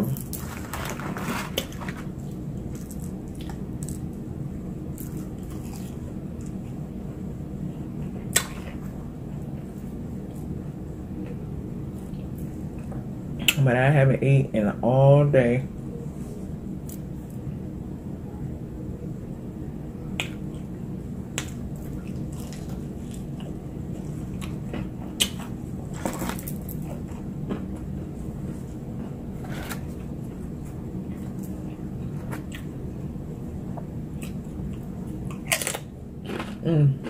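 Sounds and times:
low background hum: 0.0 - 37.0
chewing crispy fried food: 4.9 - 6.8, 21.4 - 27.9, 33.8 - 37.0.

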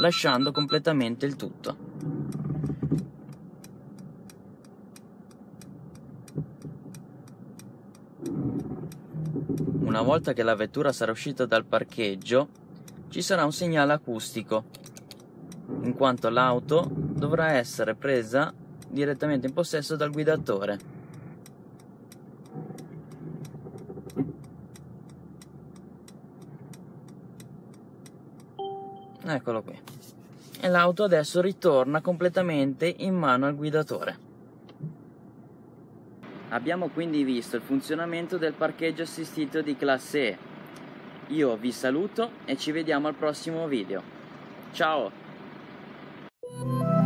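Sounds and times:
short beep: 0.0 - 0.9, 28.6 - 29.3
turn signal ticking: 0.0 - 29.6
low cabin hum: 0.0 - 39.0.

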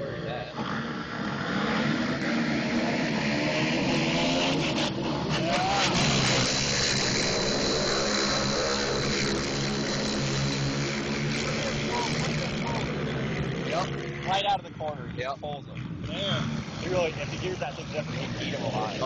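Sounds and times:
racing engines: 0.0 - 19.0.

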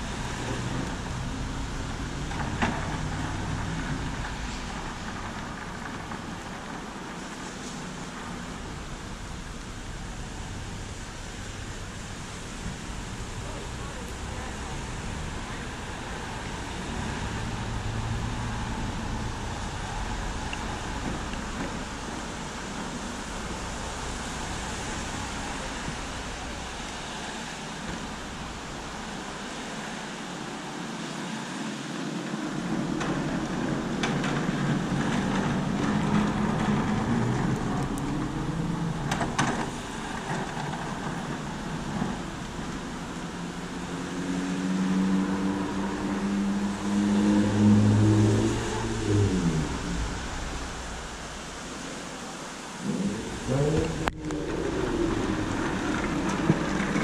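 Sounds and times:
rain hiss: 0.0 - 57.0
vehicle on wet asphalt: 0.0 - 57.0.

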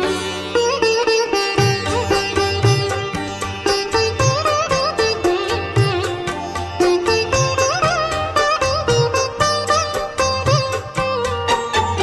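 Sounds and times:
plucked string melody: 0.0 - 12.0.

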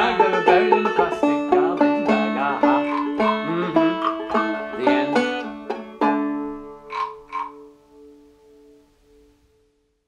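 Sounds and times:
banjo chord ringing: 0.0 - 9.6
wooden frog guiro rasps: 1.8 - 5.8, 6.7 - 7.8.

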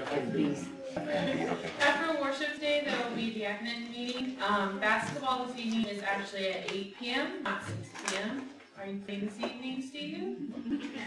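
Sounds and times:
woman speaking into microphone: 1.8 - 10.5.

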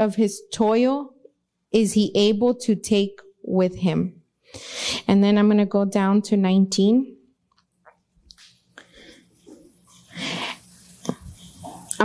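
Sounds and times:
breath into a microphone: 4.5 - 5.1, 8.8 - 9.4, 10.1 - 10.6.

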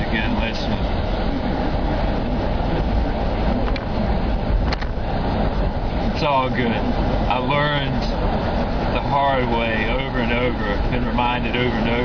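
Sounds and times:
car cabin road noise: 0.0 - 12.0.

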